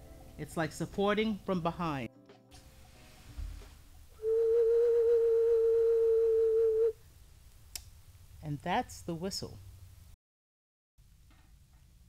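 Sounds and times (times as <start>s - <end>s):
clay whistle note: 4.2s - 7.0s.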